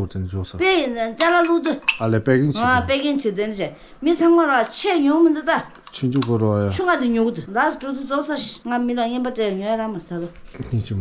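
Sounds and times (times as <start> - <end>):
woman talking: 2.6 - 5.8, 6.8 - 10.4.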